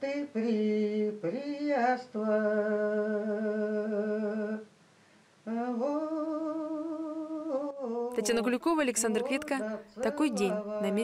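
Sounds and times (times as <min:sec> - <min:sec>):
woman singing unaccompanied: 0:08.1 - 0:11.0.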